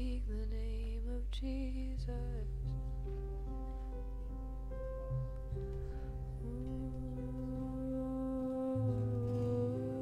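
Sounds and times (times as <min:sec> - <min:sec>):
soft worship band music: 0:00.0 - 0:10.0.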